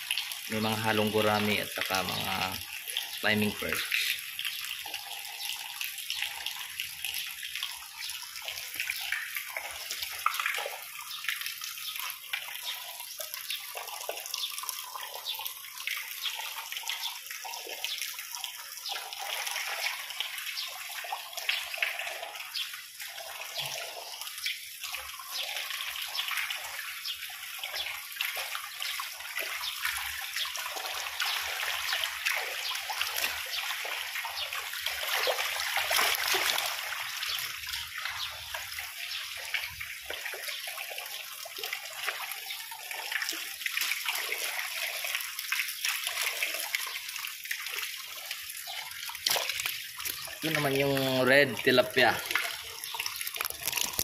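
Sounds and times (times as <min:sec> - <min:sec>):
water splashing and trickling: 0:00.0 - 0:54.0.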